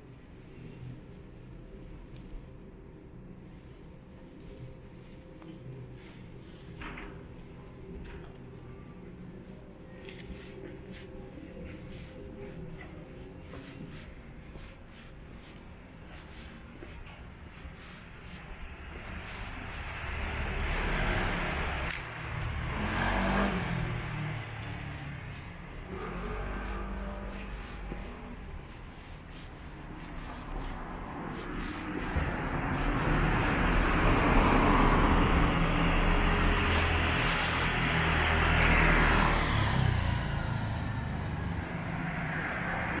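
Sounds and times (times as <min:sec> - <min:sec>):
street noise: 0:00.0 - 0:43.0
motor scooter passing: 0:17.8 - 0:43.0.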